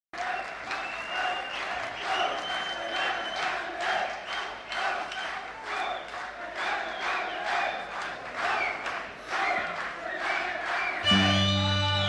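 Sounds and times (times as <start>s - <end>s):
audience applauding: 0.1s - 12.0s.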